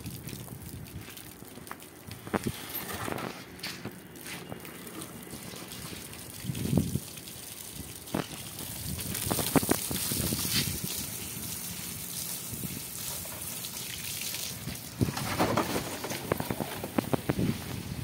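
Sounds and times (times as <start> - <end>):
hose water spraying on concrete: 0.0 - 18.0.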